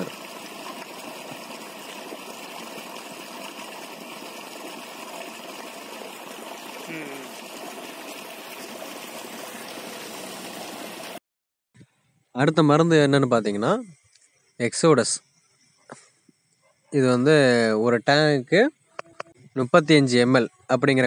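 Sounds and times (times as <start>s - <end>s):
water rushing in channel: 0.0s - 11.2s
faint voice: 6.9s - 7.4s.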